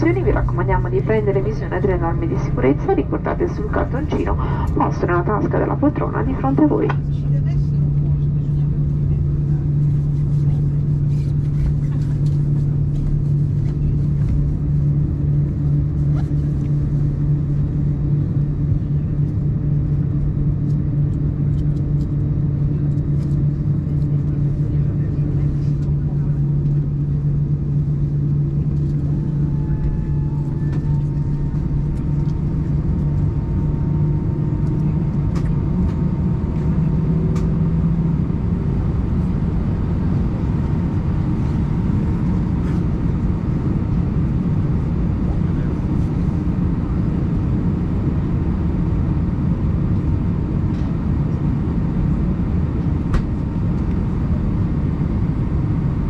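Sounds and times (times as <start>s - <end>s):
aircraft cabin drone: 0.0s - 56.0s.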